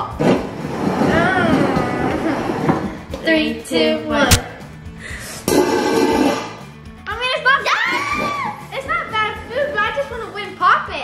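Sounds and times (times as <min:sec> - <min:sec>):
background music: 0:00.0 - 0:11.0
girls' excited voices: 0:07.1 - 0:10.4.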